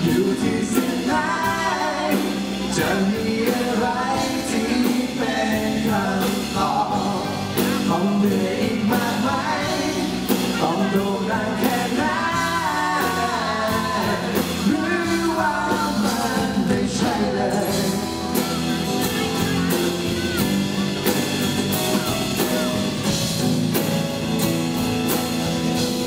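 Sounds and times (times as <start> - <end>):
two men singing duet: 0.0 - 18.6
acoustic guitar: 0.0 - 26.0
bass guitar: 0.0 - 26.0
drums: 0.0 - 26.0.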